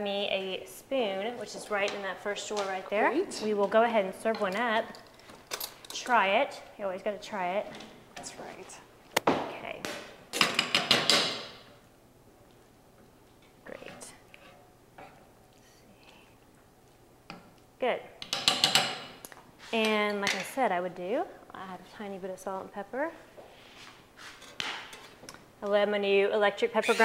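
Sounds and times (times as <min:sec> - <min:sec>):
metal utensil scraping a skillet: 0:26.8 - 0:27.0.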